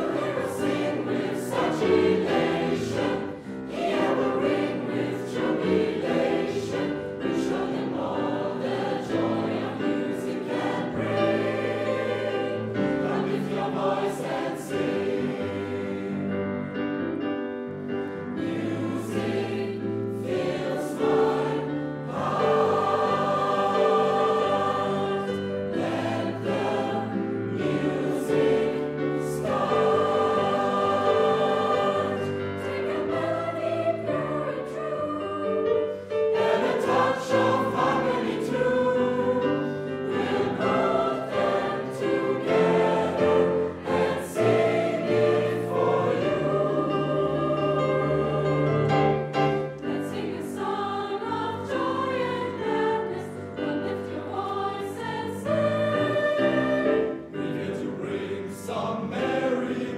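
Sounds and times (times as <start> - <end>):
choir singing in parts: 0.0 - 16.9, 18.0 - 59.9
grand piano accompaniment: 0.0 - 59.9.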